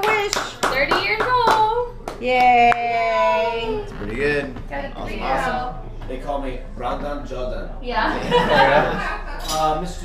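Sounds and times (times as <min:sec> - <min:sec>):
small group clapping: 0:00.0 - 0:02.8.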